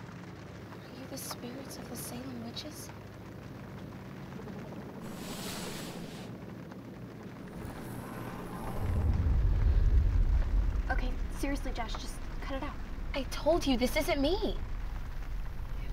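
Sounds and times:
deep ominous rumble: 0:04.6 - 0:15.9
hissing whoosh: 0:05.0 - 0:06.4, 0:07.4 - 0:11.3.

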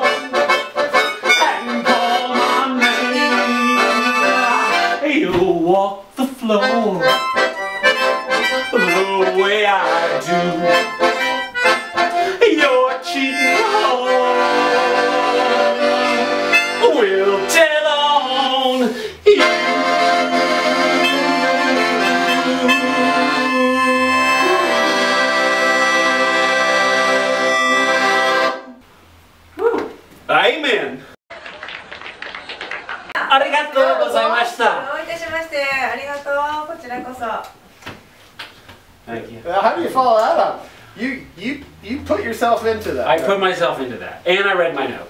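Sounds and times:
melodica: 0:00.0 - 0:05.0, 0:06.6 - 0:17.9, 0:18.6 - 0:28.8
piano accordion: 0:00.0 - 0:05.0, 0:06.6 - 0:28.8.

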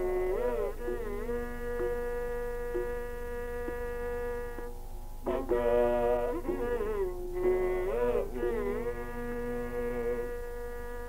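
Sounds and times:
long sung note: 0:00.0 - 0:11.0
plucked tanpura drone: 0:00.0 - 0:11.0.

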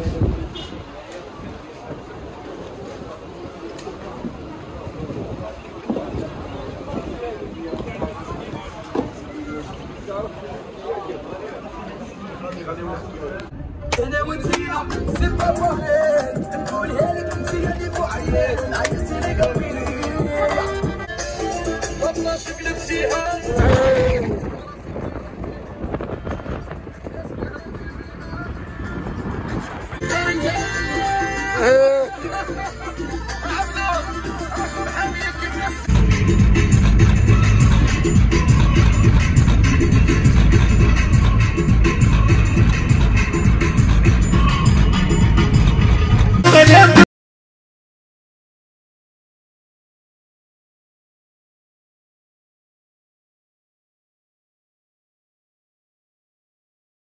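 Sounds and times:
wind and road noise rushing: 0:00.0 - 0:10.8, 0:12.9 - 0:16.7, 0:23.4 - 0:31.1
indistinct crowd chatter: 0:00.0 - 0:47.0.

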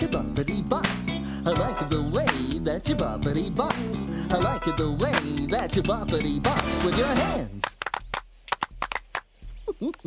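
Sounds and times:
group clapping in rhythm: 0:05.1 - 0:05.4, 0:06.5 - 0:09.4.

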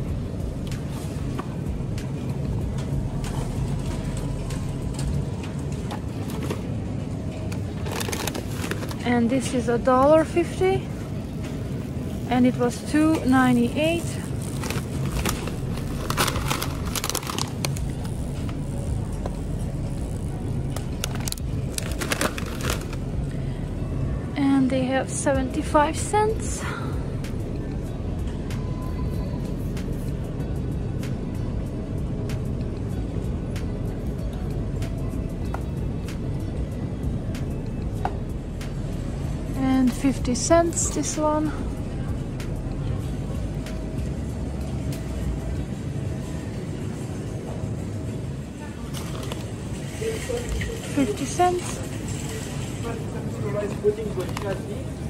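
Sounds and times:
faint background music: 0:00.0 - 0:55.0
steady low rumble: 0:00.0 - 0:55.0
packaging clicks: 0:14.6 - 0:17.8, 0:21.0 - 0:23.0
plastic snack bag crinkling: 0:14.6 - 0:17.8, 0:21.0 - 0:23.0.

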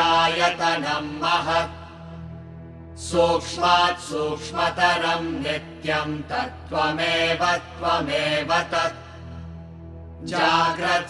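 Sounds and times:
person chanting melodically: 0:00.0 - 0:02.0, 0:03.0 - 0:09.2
steady low drone: 0:00.0 - 0:11.0.

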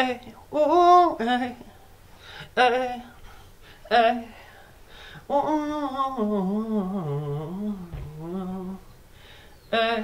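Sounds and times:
man singing wordlessly: 0:00.0 - 0:10.0.

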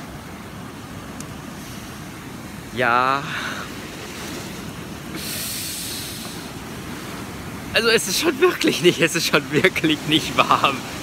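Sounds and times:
beach ambience: 0:00.0 - 0:11.0.

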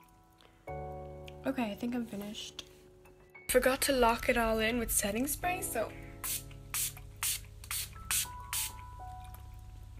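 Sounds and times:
spray bottle hissing spritzes: 0:06.2 - 0:08.8.

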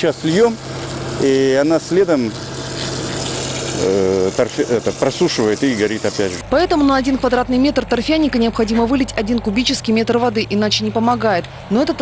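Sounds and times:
water hissing from hose nozzle: 0:00.0 - 0:06.4
low engine hum: 0:00.0 - 0:12.0
man speaking: 0:03.8 - 0:06.4.

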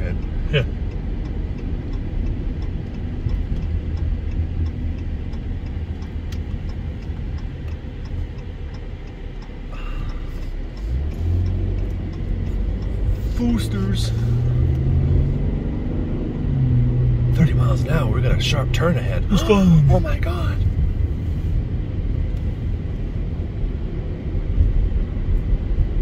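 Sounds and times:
car engine and tyre rumble: 0:00.0 - 0:26.0.

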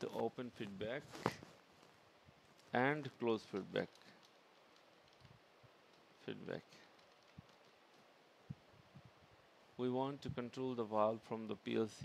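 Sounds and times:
faint keyboard key clicks: 0:03.5 - 0:06.1, 0:06.8 - 0:08.1.

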